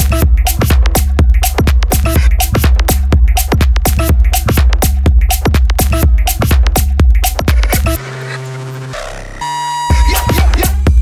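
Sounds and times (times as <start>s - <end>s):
techno beat: 0.0s - 11.0s
held synth tones: 7.9s - 11.0s
high steady synth note: 7.9s - 11.0s.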